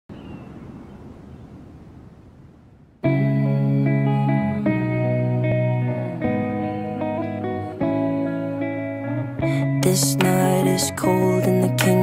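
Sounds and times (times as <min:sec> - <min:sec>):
wind rumbling on microphone: 0:00.1 - 0:03.6.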